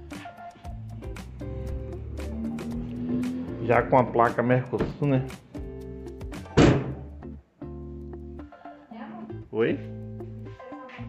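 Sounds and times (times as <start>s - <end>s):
background music: 0.0s - 11.0s
heavy thunk: 6.4s - 7.1s.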